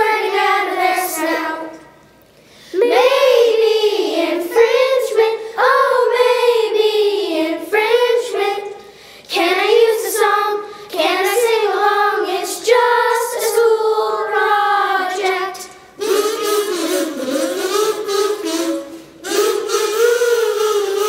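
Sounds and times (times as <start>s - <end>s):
children singing: 0.0s - 2.0s, 2.8s - 21.0s.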